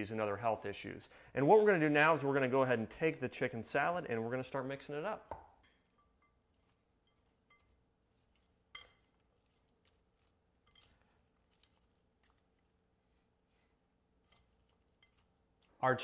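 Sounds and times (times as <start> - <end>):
spoon clinking on glass bowl: 5.6 - 9.5, 10.6 - 11.0.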